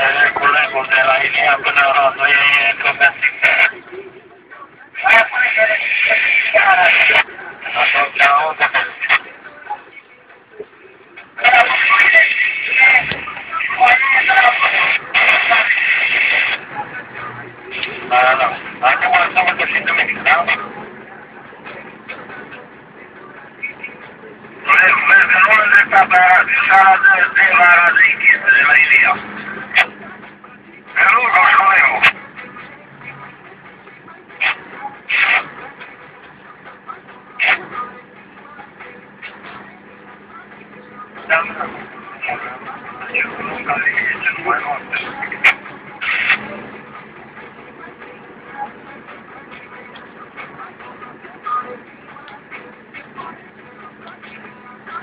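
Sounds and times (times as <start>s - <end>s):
truck engine running: 0.0s - 55.0s.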